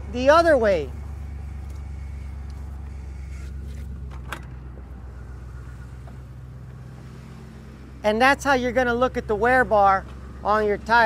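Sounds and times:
pickup truck engine idling: 0.0 - 11.0.

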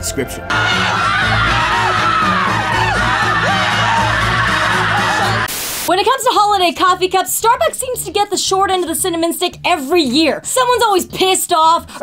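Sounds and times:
people screaming and yelling: 0.5 - 5.5.

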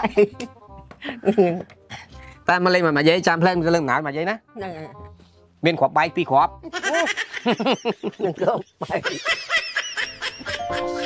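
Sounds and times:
man chuckling: 6.9 - 11.0.

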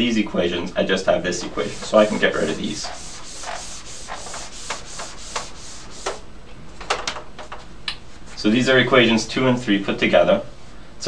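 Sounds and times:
eraser rubbing on whiteboard: 1.4 - 6.2.

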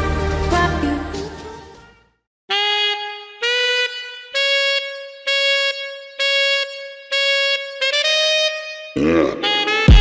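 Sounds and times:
brassy horn blasts: 2.5 - 10.0.

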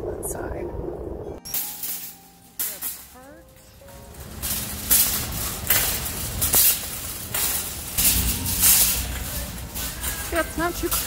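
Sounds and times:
shopping cart wheels rumbling: 0.1 - 11.0
wire shopping cart rattling: 1.5 - 11.0.

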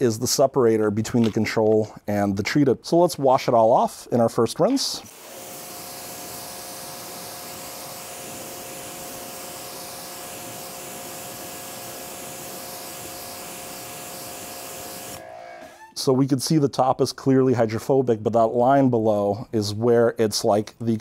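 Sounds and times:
water spray hissing: 5.1 - 15.2
pressure washer motor hum: 5.1 - 15.4.

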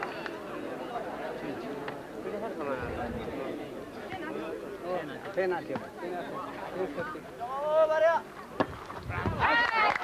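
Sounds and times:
sports crowd: 0.0 - 10.0.

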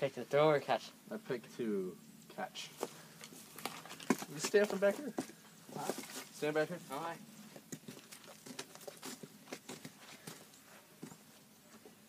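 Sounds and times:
footsteps on dry grass: 2.7 - 6.6, 7.4 - 12.0.

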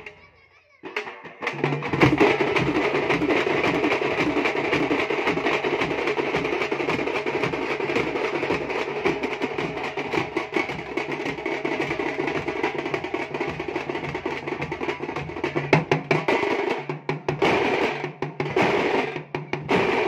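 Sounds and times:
drums beaten in fast rhythm: 0.0 - 20.0.

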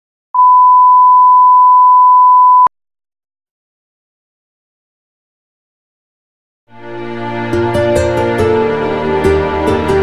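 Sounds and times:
steady pure test tone beep: 0.4 - 2.7.

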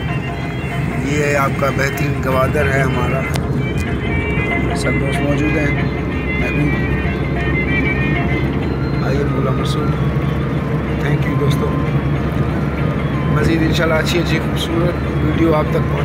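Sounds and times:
car engine rumble: 0.0 - 16.0
road noise: 0.0 - 16.0.

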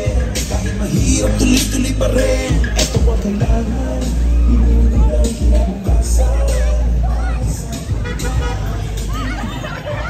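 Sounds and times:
music: 0.0 - 10.0
voices: 0.0 - 10.0
horn toots: 7.7 - 9.2.

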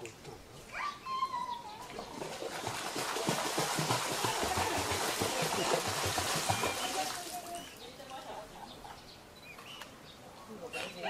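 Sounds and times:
water splashing and churning: 1.8 - 7.8.

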